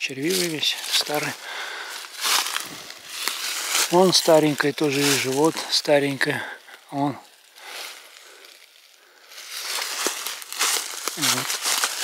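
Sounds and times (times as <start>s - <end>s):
dry leaves rustling: 0.0s - 12.0s.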